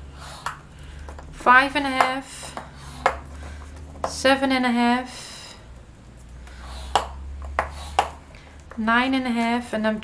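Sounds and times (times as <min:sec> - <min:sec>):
stylus rubbing along paper: 0:00.1 - 0:00.6, 0:02.4 - 0:03.2, 0:06.6 - 0:08.2.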